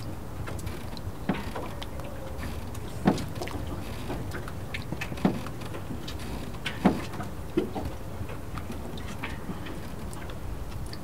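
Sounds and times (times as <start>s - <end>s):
small water splashes: 0.0s - 11.0s
water lapping and sloshing: 0.0s - 11.0s.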